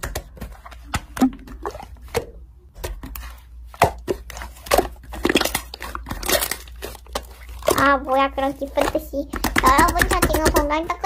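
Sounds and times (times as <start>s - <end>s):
slime squeezed with sticky pops: 0.0s - 10.7s.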